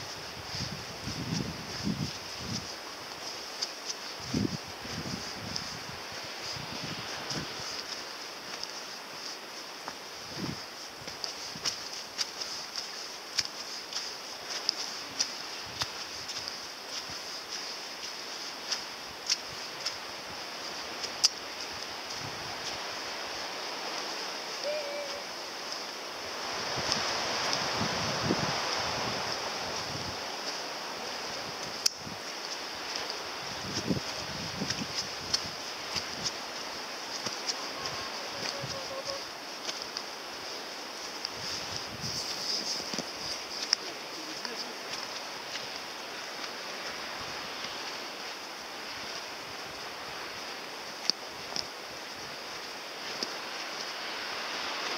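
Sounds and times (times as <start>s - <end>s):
footsteps on leafy dirt path: 0.0s - 54.9s.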